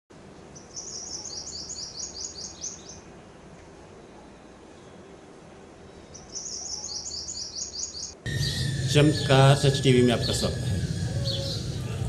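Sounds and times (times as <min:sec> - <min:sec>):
songbird singing high notes: 0:06.2 - 0:12.0
low background hum: 0:08.2 - 0:12.0.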